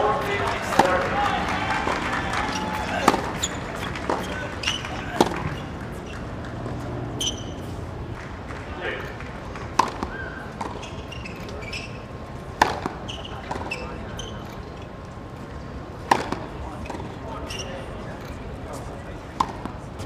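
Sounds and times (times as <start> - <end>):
racket hitting tennis ball: 0.4 - 1.2, 1.9 - 7.8, 9.6 - 10.8, 12.6 - 13.8, 16.0 - 17.1, 19.4 - 19.8
shoe squeaks: 3.3 - 6.4, 7.0 - 7.8, 10.1 - 12.2, 12.9 - 14.9, 16.8 - 18.1.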